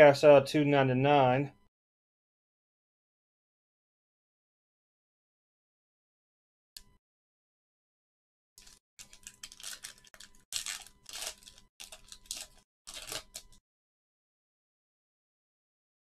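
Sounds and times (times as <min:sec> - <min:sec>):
foil pack tearing and crinkling: 0:08.6 - 0:13.6.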